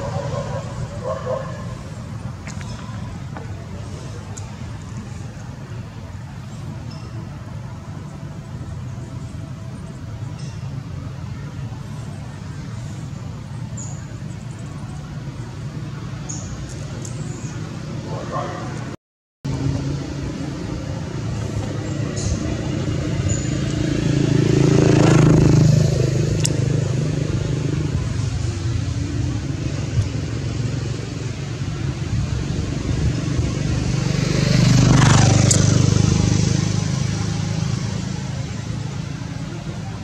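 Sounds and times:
vehicles passing by: 0:00.0 - 0:40.0.

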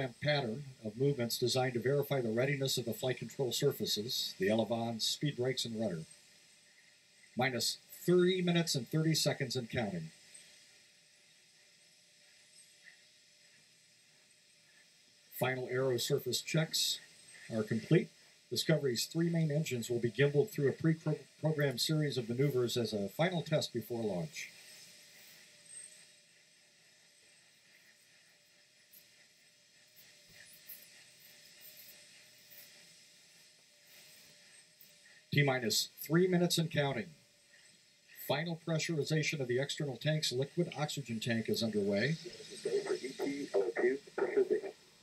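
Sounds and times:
faint steady hiss: 0:00.0 - 0:45.0
faint steady tone: 0:00.0 - 0:45.0.

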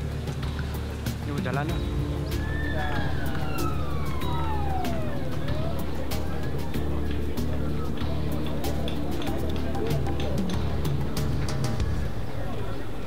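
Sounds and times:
background music: 0:00.0 - 0:13.0
siren wailing: 0:02.3 - 0:06.9.

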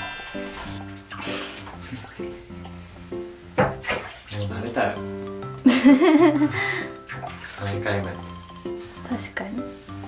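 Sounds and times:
background music of held notes: 0:00.0 - 0:10.0
water sloshing in a bathtub: 0:00.5 - 0:05.2, 0:06.7 - 0:08.3.

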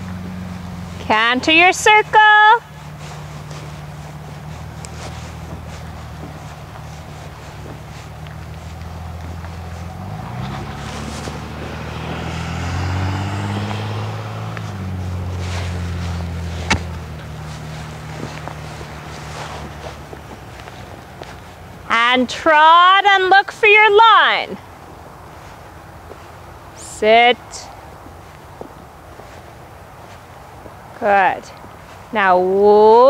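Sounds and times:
vehicle engine running: 0:00.0 - 0:23.4
horse hoofbeats on soft ground: 0:00.0 - 0:33.0.

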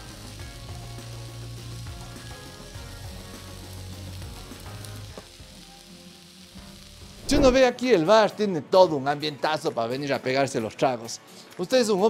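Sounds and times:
steak sizzling on hot stone: 0:00.0 - 0:08.1
soft background music: 0:00.0 - 0:12.0.

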